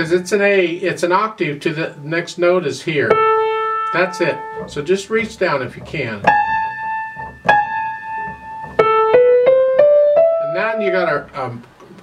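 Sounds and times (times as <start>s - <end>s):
grand piano single notes: 1.6s - 11.3s.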